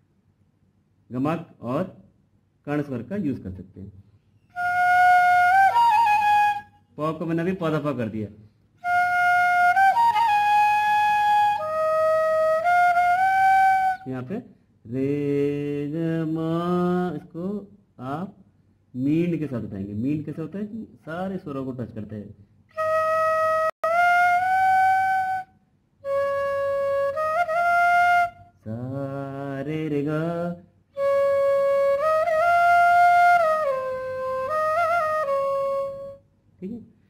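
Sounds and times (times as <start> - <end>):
bamboo flute playing: 4.5 - 6.9, 8.8 - 14.2, 22.7 - 29.0, 31.0 - 36.2
man's voice: 14.1 - 18.4, 19.0 - 22.3.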